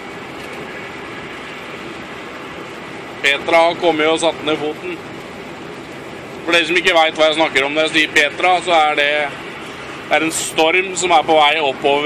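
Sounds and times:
rain on truck cab: 0.0s - 12.0s
truck engine running: 0.0s - 12.0s.

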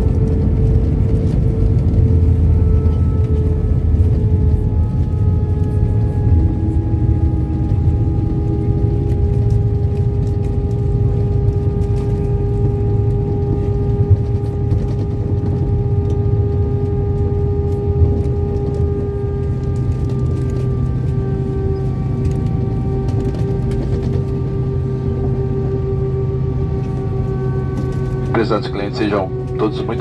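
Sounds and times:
jet engines whining: 0.0s - 30.0s
wheels rumbling on runway: 0.0s - 30.0s.

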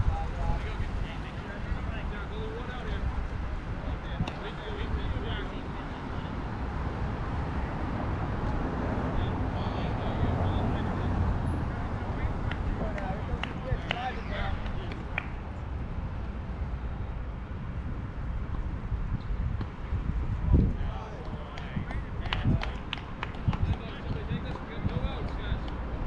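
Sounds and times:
faint distant voices: 0.0s - 15.8s.

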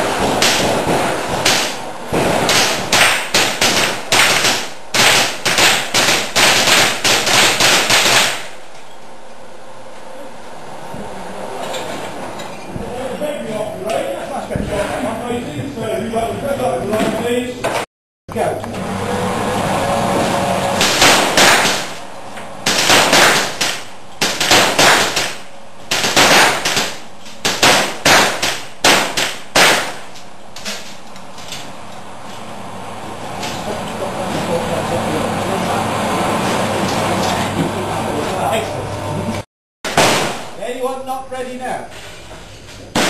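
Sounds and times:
rifle gunshots: 22.7s - 30.0s.

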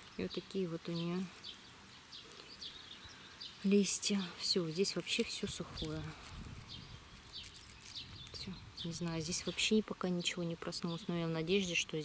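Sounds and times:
small songbirds chirping: 0.0s - 12.0s.

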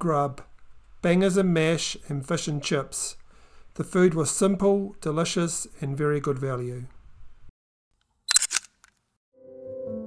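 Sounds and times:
camera shutter double click: 8.3s - 8.9s
soft piano music: 9.4s - 10.0s.

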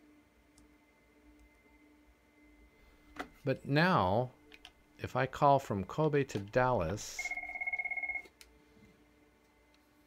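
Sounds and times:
phone ringing two-tone: 7.0s - 8.3s.

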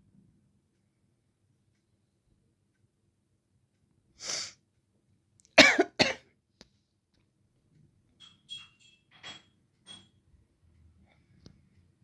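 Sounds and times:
person coughing: 5.6s - 6.3s.

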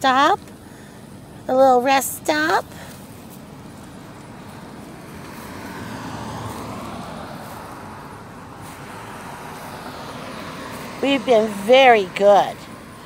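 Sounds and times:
outdoor traffic noise: 0.0s - 13.0s
road vehicle passing: 0.0s - 13.0s.

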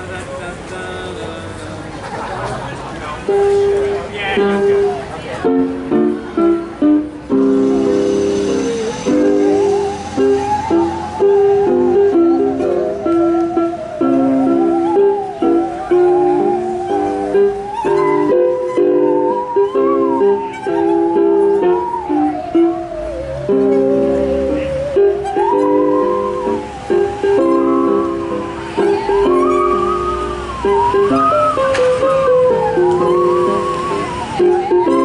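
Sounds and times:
musical saw melody: 3.2s - 35.0s
plucked string chords: 3.2s - 35.0s.

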